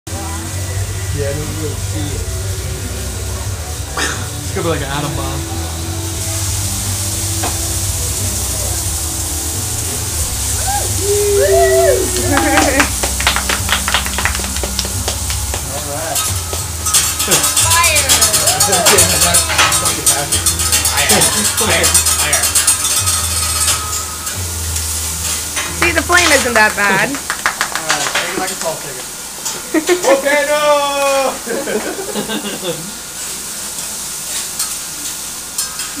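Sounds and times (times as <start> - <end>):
food sizzling on a griddle: 0.1 - 36.0
people laughing: 10.6 - 13.0, 17.2 - 17.6, 18.5 - 19.5, 21.0 - 21.7, 29.6 - 33.0.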